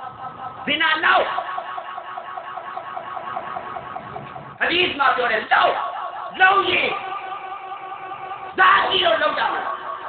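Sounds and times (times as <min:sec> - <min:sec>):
electronic siren warbling: 0:00.0 - 0:10.0.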